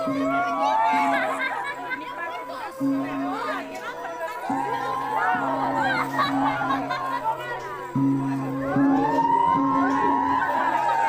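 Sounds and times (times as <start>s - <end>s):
crowd talking and calling: 0.0s - 11.0s
music with low steady notes: 0.0s - 11.0s.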